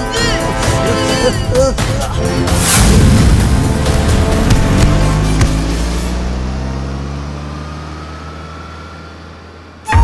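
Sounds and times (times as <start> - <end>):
loud music: 0.0 - 6.2.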